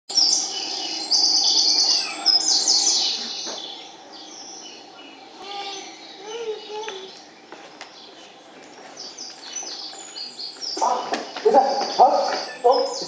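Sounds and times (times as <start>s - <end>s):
recorded birdsong chirps and trills: 0.1s - 13.0s.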